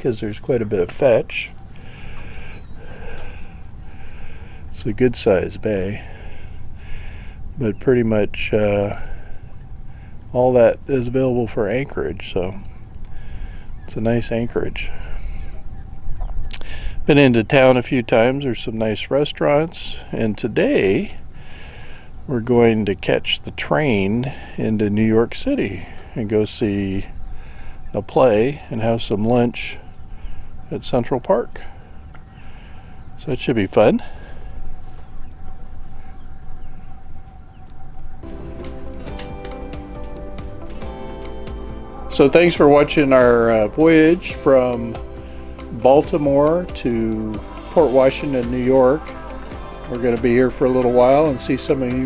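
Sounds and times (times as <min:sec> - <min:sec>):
faint bird chirps: 0:00.0 - 0:18.9, 0:23.5 - 0:43.6
faint steady hum: 0:00.0 - 0:52.0
high hiss: 0:23.9 - 0:52.0
low rumble: 0:34.0 - 0:51.9
music: 0:38.2 - 0:52.0.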